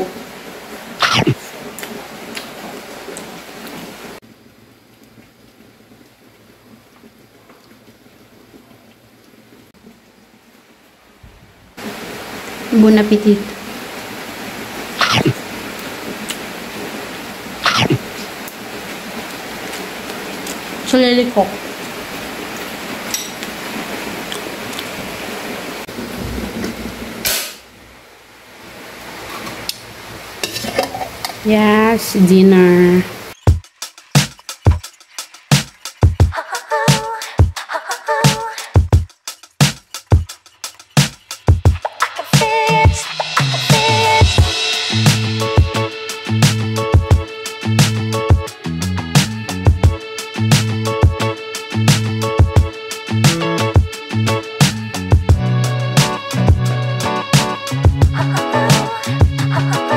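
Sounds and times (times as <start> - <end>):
rain hissing: 0.0 - 59.9
gas stove burner hissing: 26.6 - 27.9, 38.5 - 48.3.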